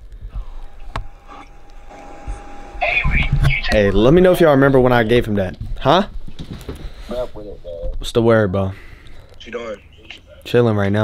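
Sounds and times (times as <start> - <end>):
person speaking: 2.8 - 5.9.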